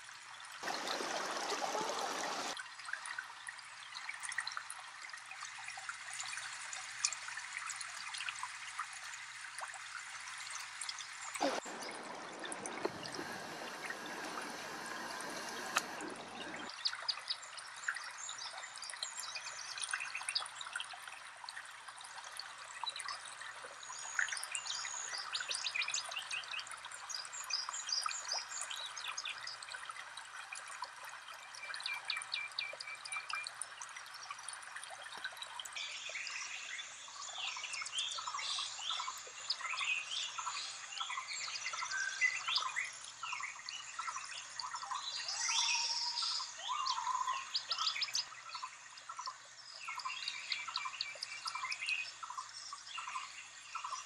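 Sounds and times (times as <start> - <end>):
running water rushing: 0.0 - 4.3, 4.9 - 18.8
songbirds chirping and trilling: 35.8 - 54.0.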